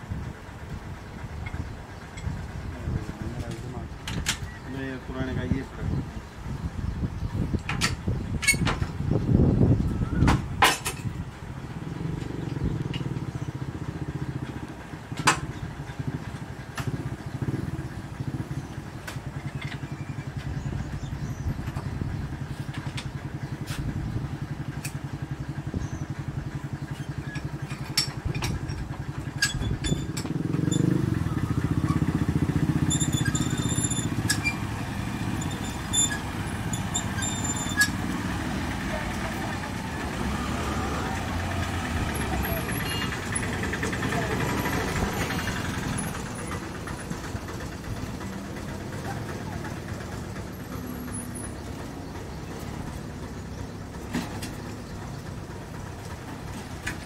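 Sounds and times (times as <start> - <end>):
engines idling in low rumble: 0.0 - 57.0.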